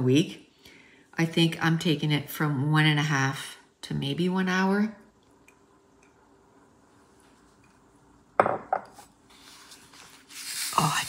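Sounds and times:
mug knocking on tabletop: 8.4s - 8.9s.

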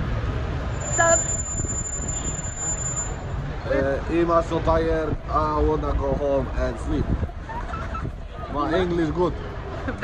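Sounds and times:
traffic rumble: 0.0s - 10.0s
thin high steady tone: 0.7s - 3.4s.

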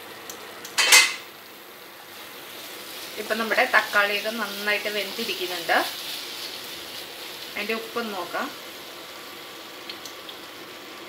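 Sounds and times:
tomato and onion sizzling in a pan: 0.0s - 11.0s.

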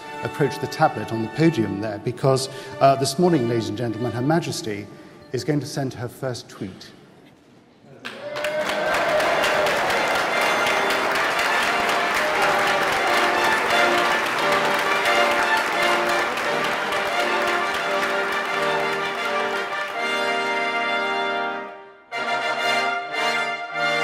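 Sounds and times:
crowd applauding: 8.0s - 20.9s
brass playing held chords: 9.9s - 24.0s.

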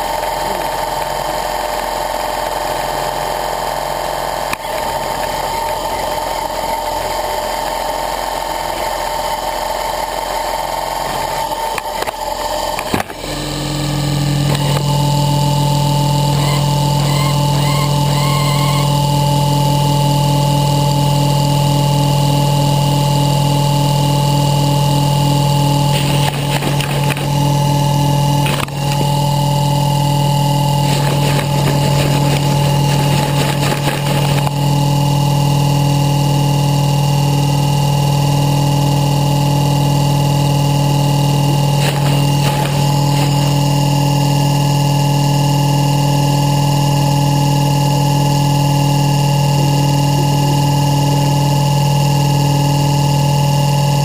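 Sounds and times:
model helicopter motor and rotor: 0.0s - 54.0s.

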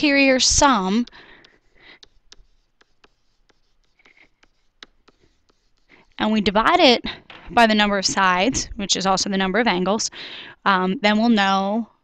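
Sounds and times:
stylus tapping on tablet: 0.6s - 6.0s.

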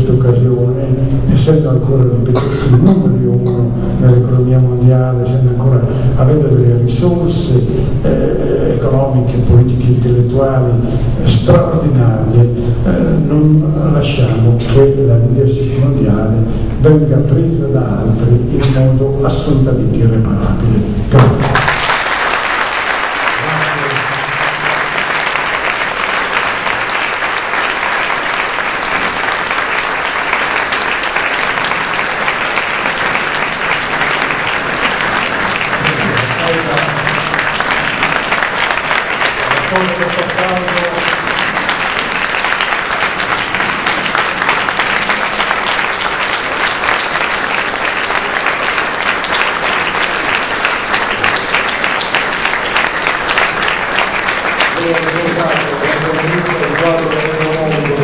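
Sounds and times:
large audience applauding: 21.2s - 58.0s.

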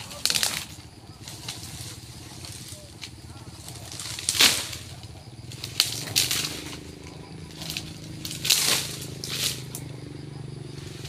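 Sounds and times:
low engine hum: 0.0s - 11.0s
rustling crash through leaves: 3.6s - 7.0s, 7.6s - 9.8s.

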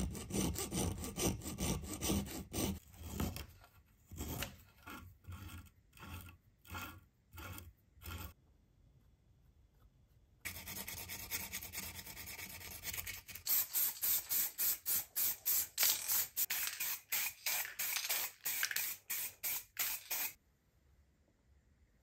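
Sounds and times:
spray paint can hissing: 13.4s - 20.4s.

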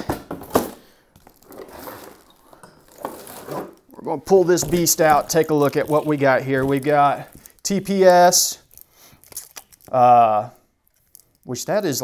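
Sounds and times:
packaging rustling and crinkling: 0.2s - 10.1s, 10.8s - 12.0s.

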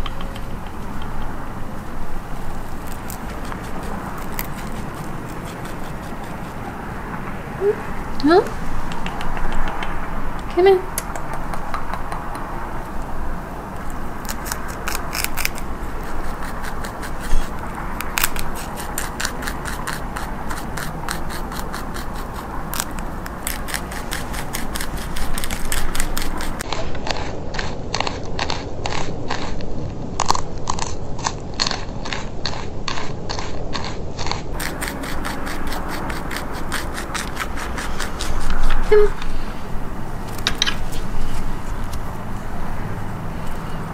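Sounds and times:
rabbit crunching on stem: 0.0s - 7.2s, 8.2s - 43.8s.

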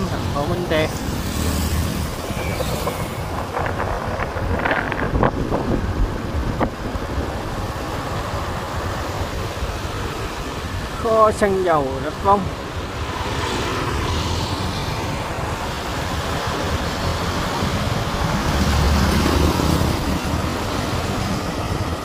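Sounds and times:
low rumble of road and engine: 0.0s - 22.0s
wind rushing over microphone: 0.0s - 22.0s.

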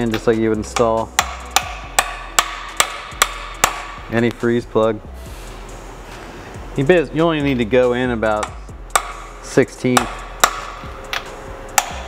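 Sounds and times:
hammer tapping metal: 0.0s - 4.1s, 8.2s - 12.0s.

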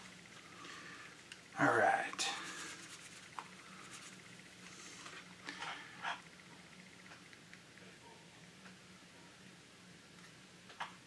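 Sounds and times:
cloth rubbing on painted plastic: 2.2s - 4.3s.

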